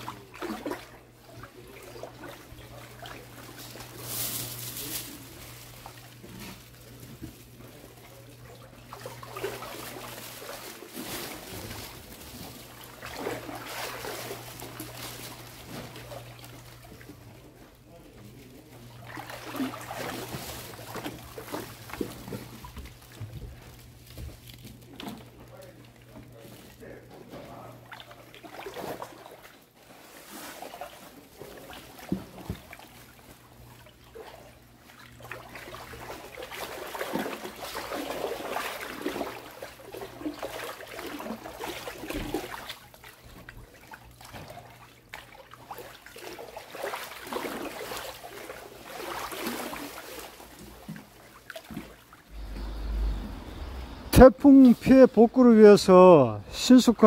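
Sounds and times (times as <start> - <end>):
water sloshing and trickling: 0.0 - 57.0
steady low hum: 50.5 - 57.0.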